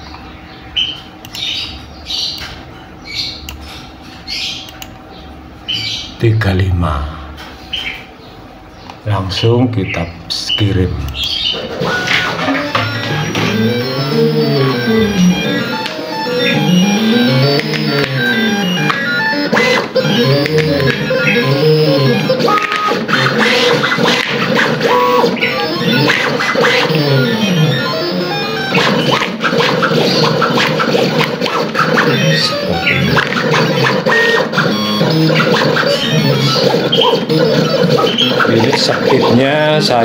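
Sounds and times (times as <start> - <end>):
ticks and clicks: 4.6 - 5.1, 12.1 - 39.4
stepper motors whining: 10.4 - 40.0.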